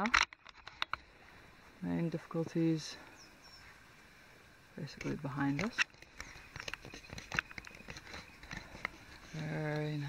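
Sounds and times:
footsteps on dry forest floor: 0:05.2 - 0:10.0.

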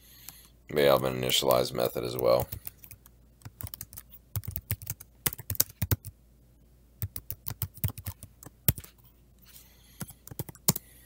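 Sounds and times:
typing on computer keyboard: 0:02.1 - 0:06.1, 0:07.0 - 0:08.9, 0:10.0 - 0:10.9.

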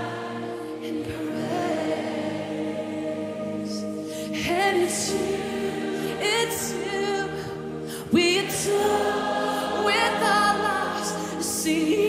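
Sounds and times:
people singing worship song: 0:00.0 - 0:12.0
sustained chords: 0:00.0 - 0:12.0.

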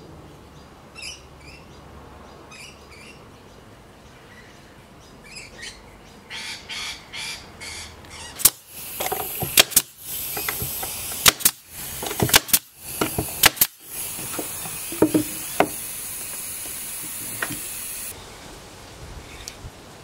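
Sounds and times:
nail gun shots: 0:08.4 - 0:18.1
high air hiss: 0:08.4 - 0:20.0.

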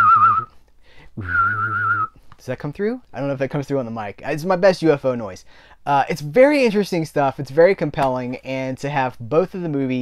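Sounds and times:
man whistling warbling high notes: 0:00.0 - 0:00.5, 0:01.2 - 0:02.2.

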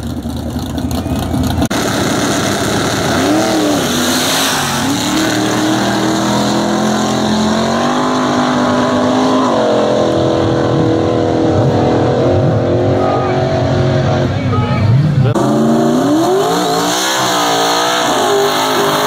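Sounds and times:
drag racing cars accelerating: 0:00.0 - 0:19.0.

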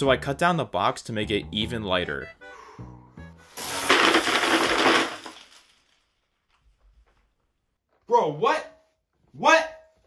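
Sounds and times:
plastic missiles rattling: 0:03.6 - 0:05.8.

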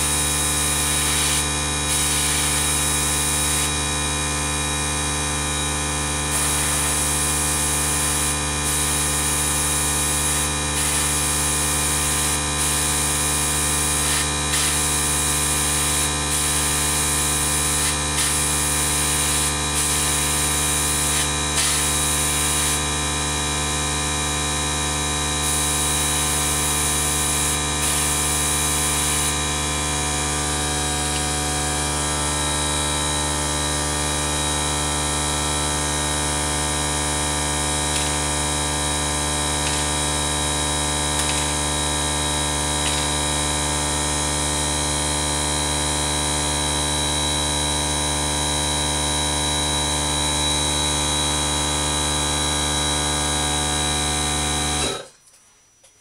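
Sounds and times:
airbrush compressor humming: 0:00.0 - 0:44.8
airbrush spray hisses: 0:00.9 - 0:03.7.

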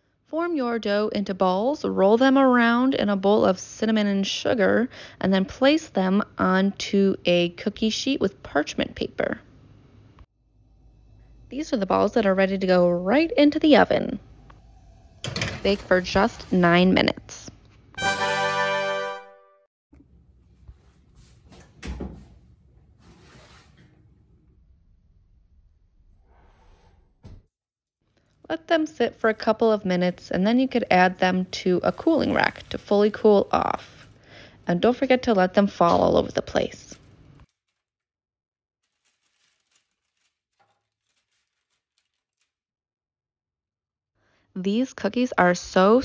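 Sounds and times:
baking sheet sliding over rack: 0:23.0 - 0:24.0, 0:30.0 - 0:34.2.

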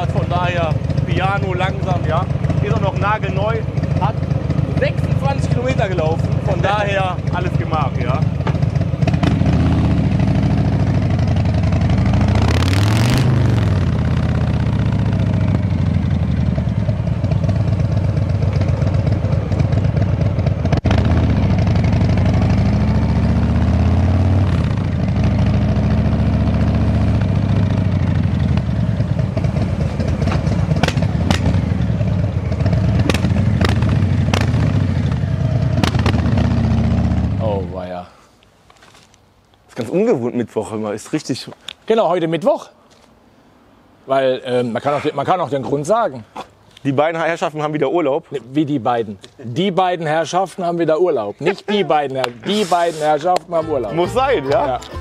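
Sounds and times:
motorcycle engine revving: 0:00.0 - 0:37.7.

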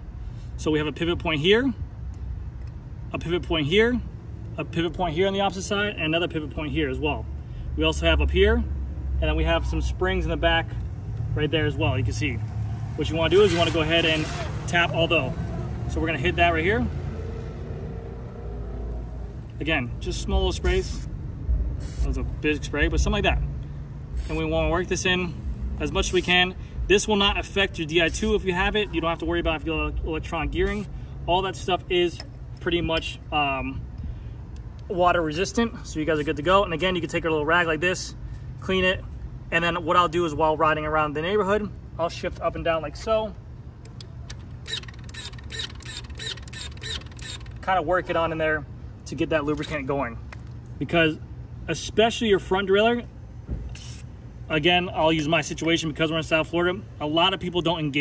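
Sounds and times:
electronic derailleur motor whirr: 0:44.3 - 0:47.6, 0:53.7 - 0:54.1.

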